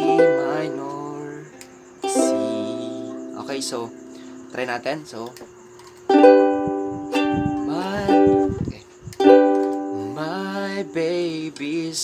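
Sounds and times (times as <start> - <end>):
ukulele strumming: 0.0 - 4.6, 6.1 - 11.0.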